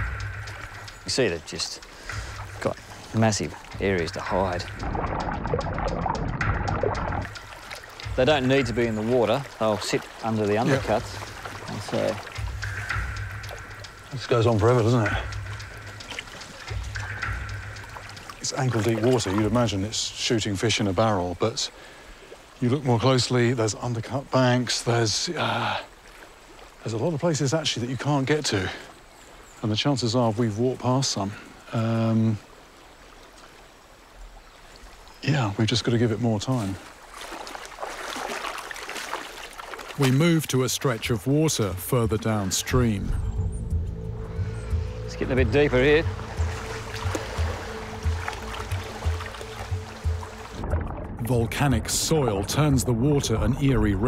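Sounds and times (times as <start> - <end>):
sustained low background music: 0.0 - 21.4, 40.1 - 54.0
stream water trickling: 0.0 - 54.0.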